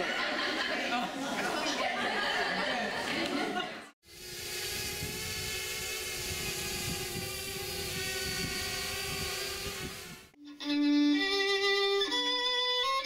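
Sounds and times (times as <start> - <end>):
hiss: 4.0 - 10.3
drone motors whining: 4.1 - 10.4.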